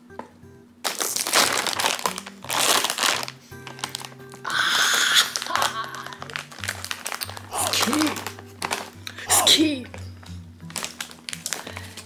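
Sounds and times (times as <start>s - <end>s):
background music with low notes: 0.0s - 12.0s
plastic chip bag crinkling: 0.8s - 12.0s.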